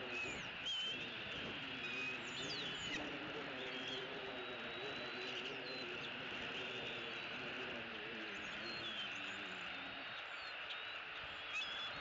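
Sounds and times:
steady outdoor hiss: 0:00.0 - 0:12.0.

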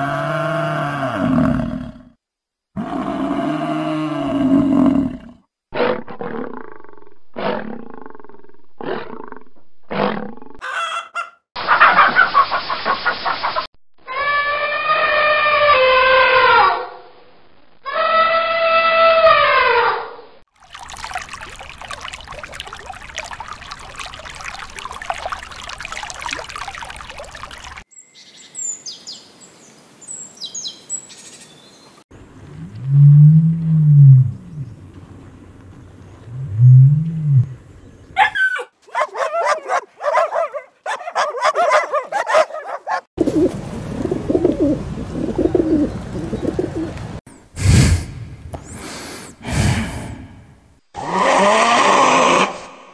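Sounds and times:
water noise: 0:20.5 - 0:27.9, 0:32.1 - 0:37.8, 0:41.2 - 0:50.8
bird chirping: 0:27.9 - 0:32.0.

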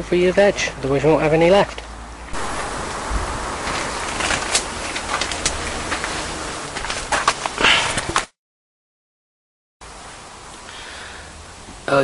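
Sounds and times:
leaves rustling: 0:01.3 - 0:08.3
outdoor hiss: 0:02.3 - 0:08.3, 0:09.8 - 0:12.0.

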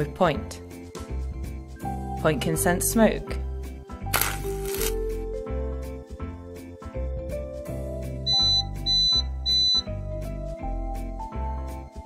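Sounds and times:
background music with bass: 0:00.0 - 0:12.0.

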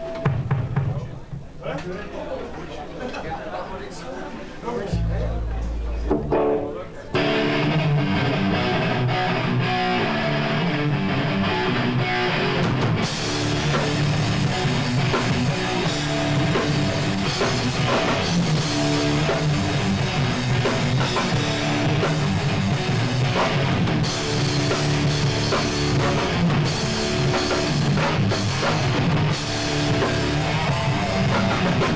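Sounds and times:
cymbals: 0:04.9 - 0:07.4
drum kit: 0:04.9 - 0:08.9, 0:12.5 - 0:31.9
bass guitar: 0:04.9 - 0:31.9
distorted electric guitar: 0:04.9 - 0:31.9.

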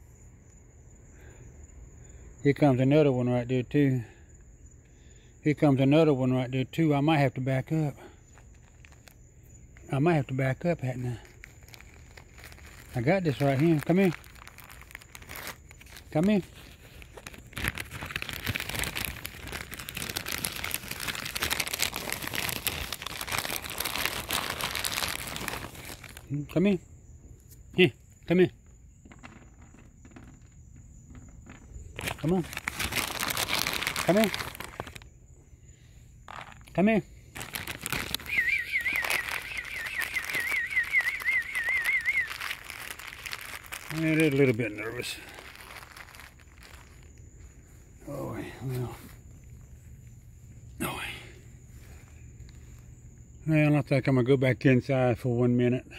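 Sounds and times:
crinkling and rustling handling noise: 0:08.2 - 0:26.3, 0:28.6 - 0:35.1, 0:36.2 - 0:48.0
high wavering whistle: 0:38.2 - 0:42.7.

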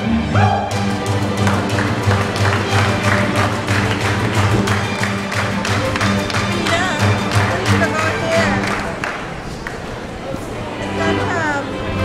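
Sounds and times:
pulsing bass line: 0:00.0 - 0:09.0
string ensemble playing: 0:00.0 - 0:12.0.

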